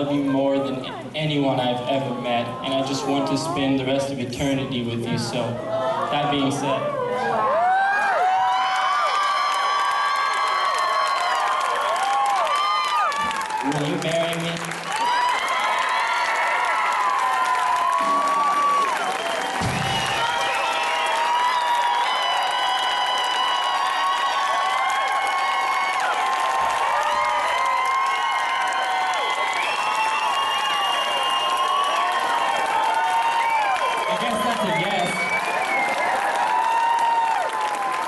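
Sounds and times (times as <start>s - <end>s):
audience shrieks and whoops: 5.6s - 14.0s, 14.8s - 38.0s
audience clapping: 7.6s - 38.0s.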